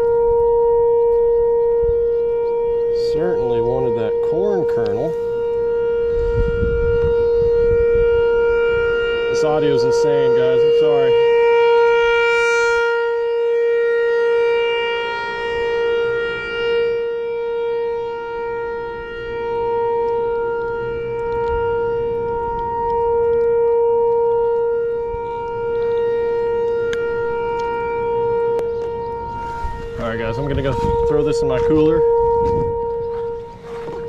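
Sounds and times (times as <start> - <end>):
steady tone with overtones: 0.0 - 34.0.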